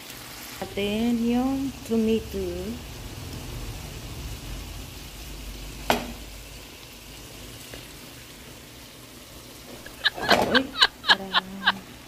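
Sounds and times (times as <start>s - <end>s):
shrimp sizzling in oil: 0.0s - 12.0s
sharp knock: 5.9s - 6.2s.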